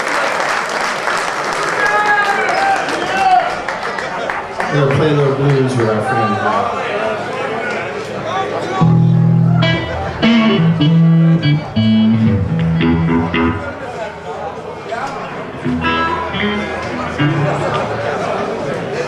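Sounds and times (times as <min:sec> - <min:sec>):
bass guitar notes: 0:08.8 - 0:14.7, 0:15.4 - 0:18.5
electric guitars through amplifiers: 0:08.8 - 0:18.3.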